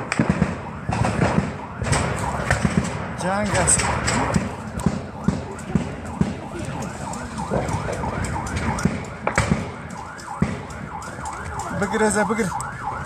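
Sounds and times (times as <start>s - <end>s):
vehicle siren yelping: 0.0s - 13.0s
scattered knocks: 7.5s - 11.4s.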